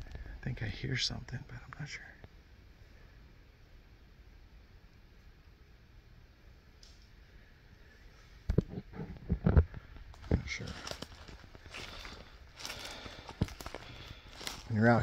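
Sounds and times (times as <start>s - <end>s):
footsteps on dry leaves: 10.1s - 15.0s.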